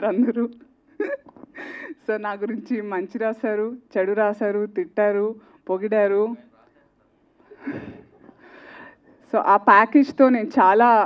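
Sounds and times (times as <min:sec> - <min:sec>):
woman speaking: 0:00.0 - 0:00.6, 0:02.0 - 0:06.5, 0:09.3 - 0:11.0
woman laughing breathily: 0:01.0 - 0:02.1, 0:07.5 - 0:09.0.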